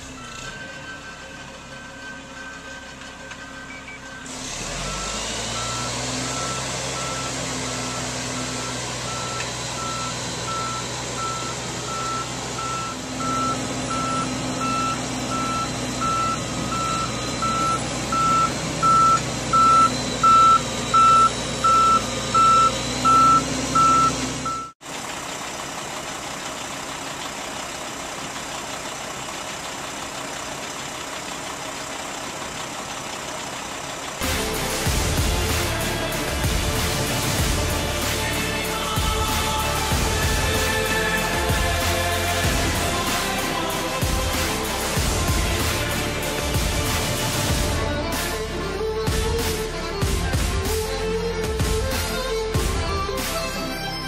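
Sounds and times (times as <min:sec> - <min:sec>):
truck reversing alarm beeping: 0:00.0 - 0:24.8, 0:29.6 - 0:50.5
truck engine running: 0:00.0 - 0:54.0.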